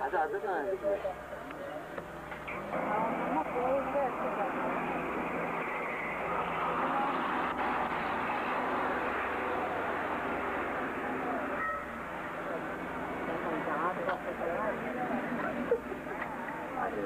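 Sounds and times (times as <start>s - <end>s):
steady noisy background: 0.0s - 17.0s.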